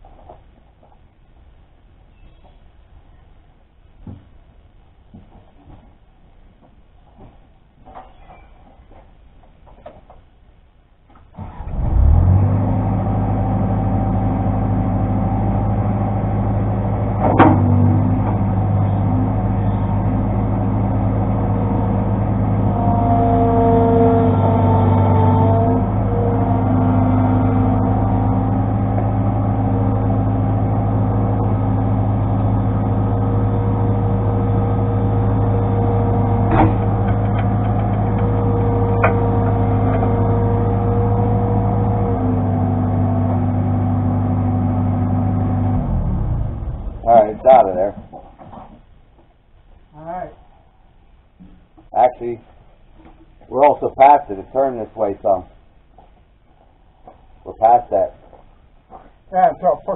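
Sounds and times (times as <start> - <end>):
skid steer engine running: 11.4 - 47.7.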